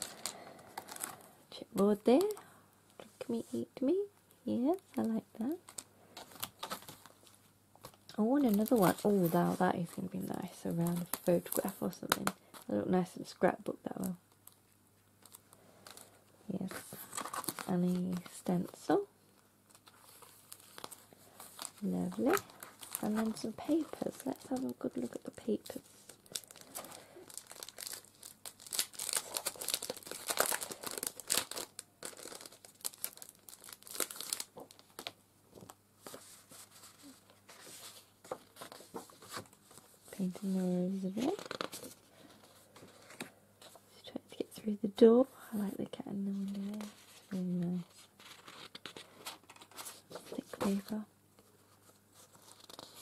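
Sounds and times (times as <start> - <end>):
cellophane packaging crinkling: 0.0 - 1.3, 5.0 - 12.7, 15.2 - 19.0, 19.7 - 43.8, 52.2 - 53.0
paper rustling: 15.2 - 18.8, 19.7 - 43.8, 46.3 - 53.0.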